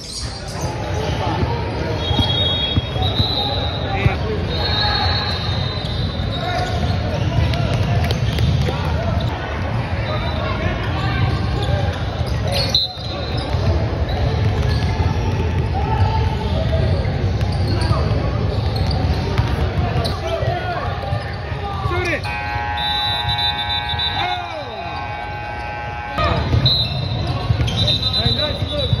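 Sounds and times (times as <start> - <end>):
chatter of people: 0.0 - 29.0
people talking: 0.0 - 29.0
sneakers squeaking: 0.0 - 29.0
buzzer tone: 22.2 - 27.0.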